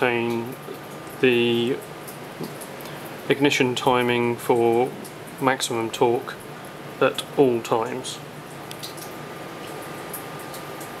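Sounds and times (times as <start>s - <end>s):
fan-like hiss: 0.0s - 11.0s.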